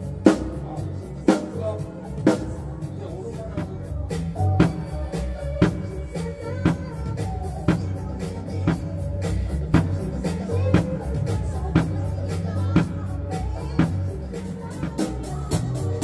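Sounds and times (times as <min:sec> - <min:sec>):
backing music track: 0:00.0 - 0:16.0.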